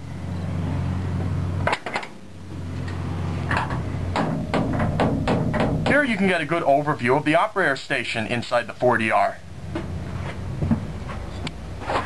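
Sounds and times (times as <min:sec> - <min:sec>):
knocks and clatters climbing in: 0:03.4 - 0:06.2
metal door clank: 0:03.5 - 0:06.2.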